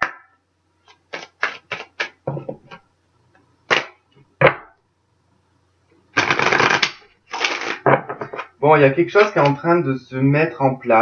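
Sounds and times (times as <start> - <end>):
cards shuffling: 0.8 - 2.8, 3.7 - 4.0, 6.2 - 8.6.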